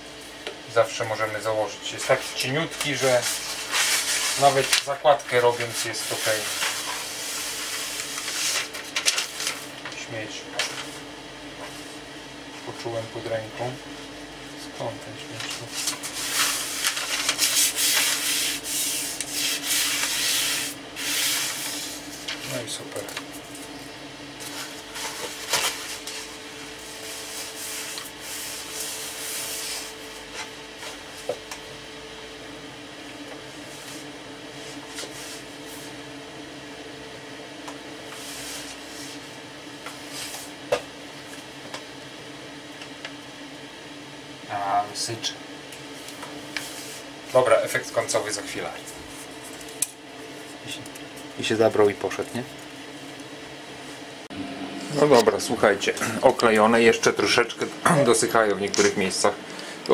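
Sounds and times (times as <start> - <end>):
hand rubbing paper flat: 2.0 - 9.7, 15.3 - 23.7, 24.4 - 31.4, 38.1 - 39.3
paper veneer rustling: 2.0 - 11.0, 15.3 - 23.8, 24.4 - 26.5.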